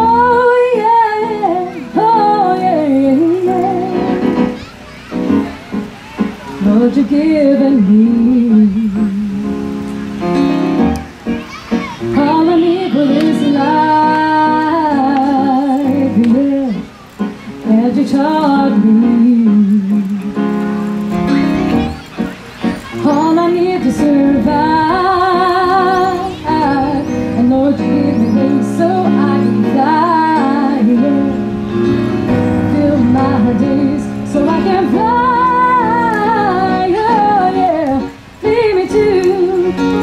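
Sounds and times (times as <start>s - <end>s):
woman singing: 0.0s - 4.3s, 6.6s - 9.5s, 12.1s - 16.8s, 17.6s - 20.1s, 23.0s - 31.6s, 32.5s - 40.0s
keyboard chords: 0.0s - 40.0s.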